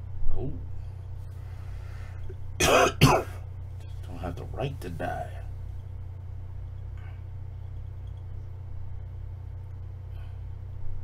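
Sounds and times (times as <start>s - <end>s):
man coughing: 2.6s - 3.4s.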